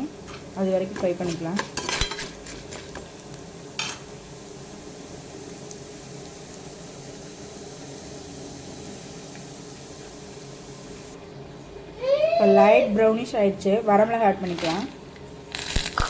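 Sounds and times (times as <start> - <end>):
lentils sizzling in oil: 0.0 - 11.2, 14.3 - 16.0.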